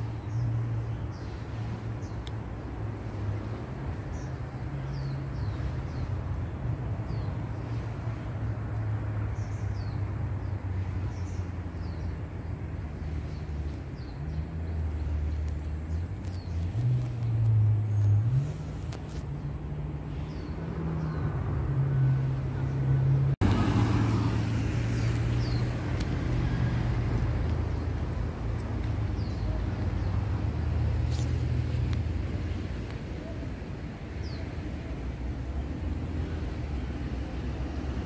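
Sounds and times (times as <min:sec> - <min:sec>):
birds chirping: 0:00.0 - 0:38.0
vehicle engine running: 0:12.9 - 0:33.0.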